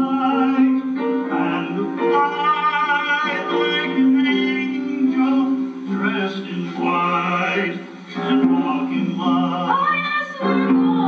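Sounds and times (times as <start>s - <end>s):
instrumental accompaniment: 0.0s - 9.7s
person singing long notes: 0.0s - 11.0s.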